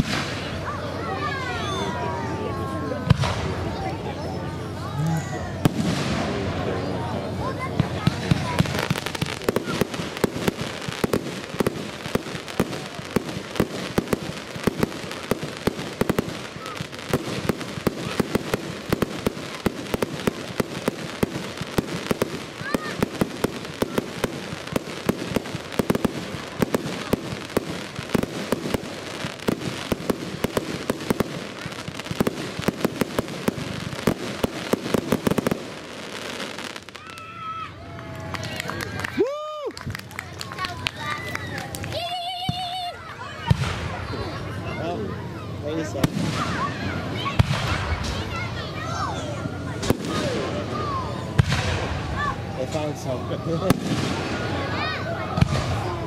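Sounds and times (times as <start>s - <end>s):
fireworks bangs and crackles: 0.0s - 37.6s, 39.8s - 56.0s
loud firework reports: 0.0s - 37.8s, 40.4s - 56.0s.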